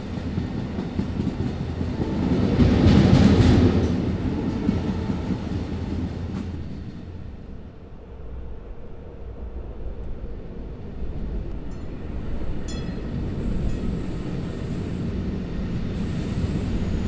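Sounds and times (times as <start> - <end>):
train wheels rumbling on track: 0.0 - 17.0.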